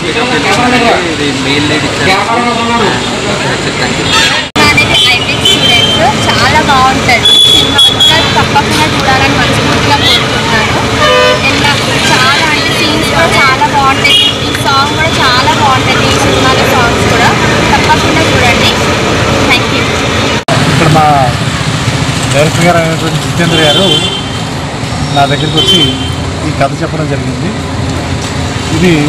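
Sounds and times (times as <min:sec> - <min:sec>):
street traffic noise: 0:00.0 - 0:29.0
vehicle horn: 0:04.1 - 0:06.1, 0:07.2 - 0:08.4, 0:10.9 - 0:12.8, 0:14.0 - 0:15.1, 0:23.4 - 0:24.5, 0:25.3 - 0:26.2
woman talking: 0:04.6 - 0:20.0.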